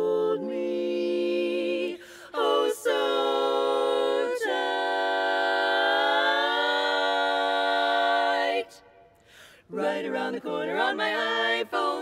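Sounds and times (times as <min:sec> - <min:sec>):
women singing in close harmony: 0:00.0 - 0:12.0.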